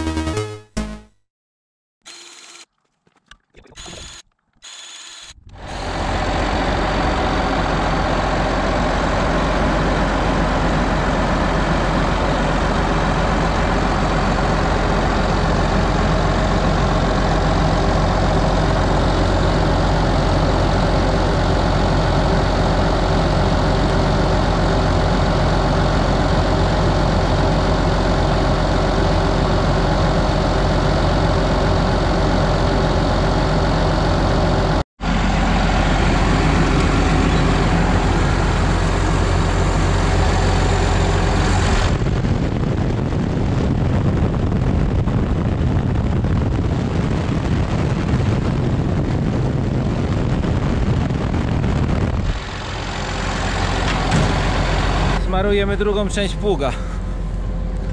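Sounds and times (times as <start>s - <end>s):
tractor diesel engine running: 4.0s - 57.9s.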